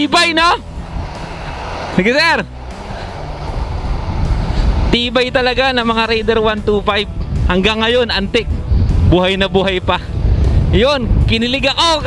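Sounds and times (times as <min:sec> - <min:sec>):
wind rumble: 0:00.0 - 0:12.0
motorcycle engine: 0:00.6 - 0:06.0.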